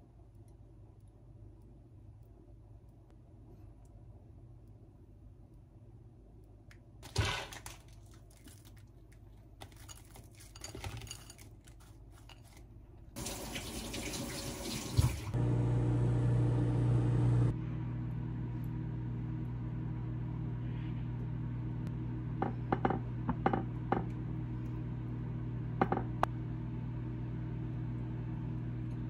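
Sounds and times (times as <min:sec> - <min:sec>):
water running from a tap: 0:13.2 - 0:15.4
kitchen appliance humming: 0:13.2 - 0:29.0.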